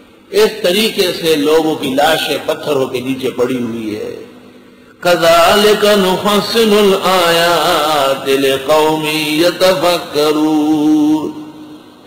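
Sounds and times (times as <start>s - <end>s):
man chanting: 0.3s - 4.4s, 5.0s - 11.8s.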